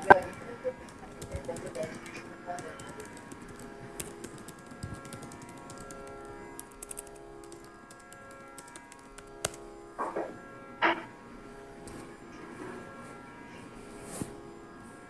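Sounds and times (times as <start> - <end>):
light clicks: 0.0 - 9.7
faint drone of held tones: 0.0 - 15.0.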